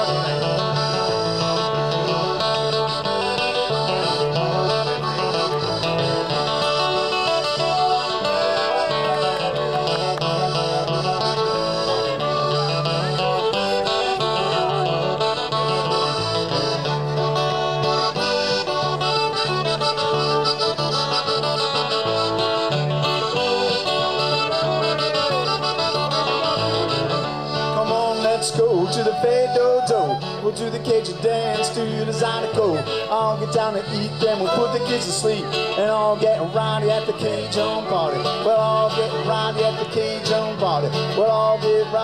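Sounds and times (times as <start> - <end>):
piano accordion: 0.0 - 28.4
band playing: 0.0 - 42.0.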